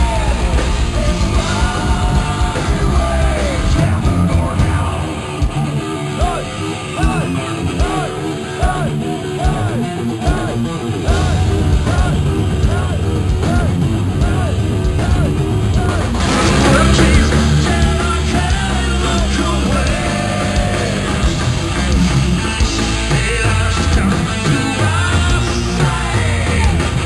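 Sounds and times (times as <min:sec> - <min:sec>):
live heavy metal band: 0:00.0 - 0:27.0
high guitar line: 0:01.7 - 0:23.3.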